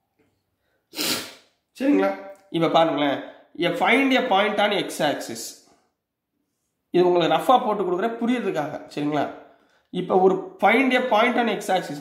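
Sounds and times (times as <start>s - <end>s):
man's sharp burst of breath: 0.9s - 1.6s
man speaking: 1.8s - 5.6s, 6.9s - 12.0s.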